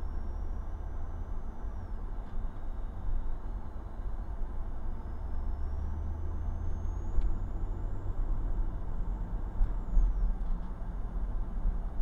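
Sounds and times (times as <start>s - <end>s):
car driving rumble inside cabin: 0.0s - 12.0s.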